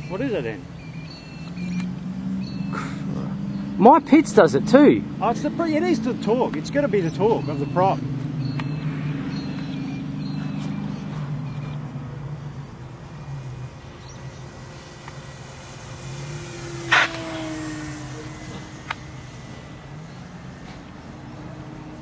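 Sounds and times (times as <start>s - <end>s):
model plane motor drone: 11.8s - 22.0s.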